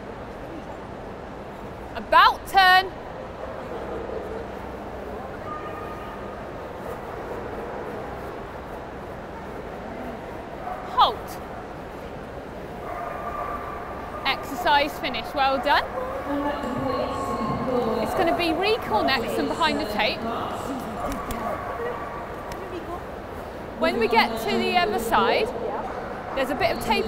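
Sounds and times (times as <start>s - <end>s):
steady background noise: 0.0s - 27.0s.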